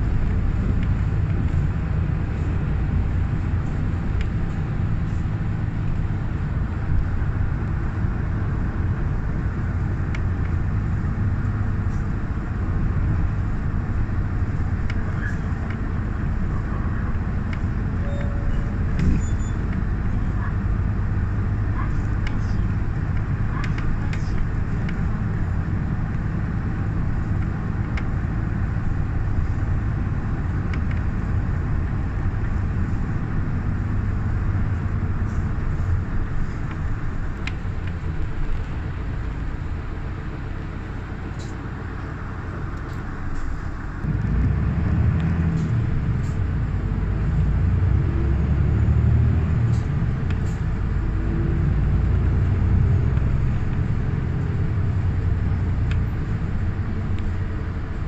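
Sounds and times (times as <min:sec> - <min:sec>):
bus engine and road rumble: 0:00.0 - 0:58.0.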